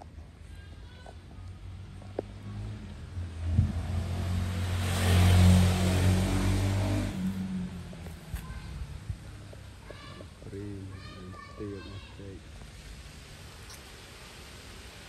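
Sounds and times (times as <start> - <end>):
vehicle passing by: 1.6 - 9.4.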